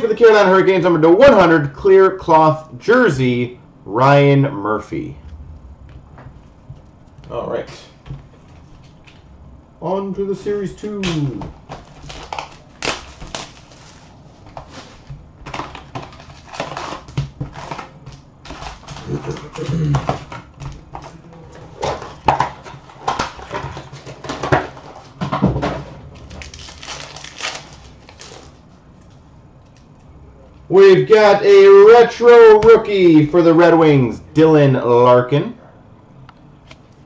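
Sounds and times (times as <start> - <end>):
foil packs crinkling and rustling: 10.9 - 25.3, 26.1 - 28.7
packs tearing: 11.0 - 21.2, 26.2 - 28.7.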